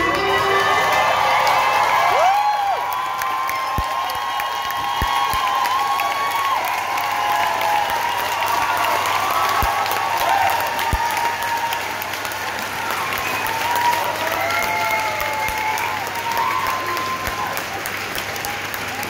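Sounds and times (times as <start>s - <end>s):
audience cheering: 0.0s - 19.0s
audience clapping: 0.0s - 19.0s.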